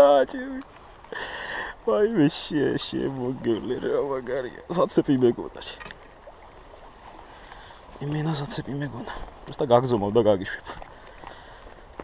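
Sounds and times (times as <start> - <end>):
flowing river rushing: 0.0 - 12.0.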